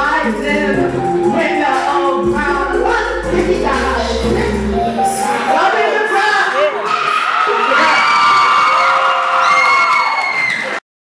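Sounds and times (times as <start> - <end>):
crowd cheering and shouting: 4.9 - 10.8.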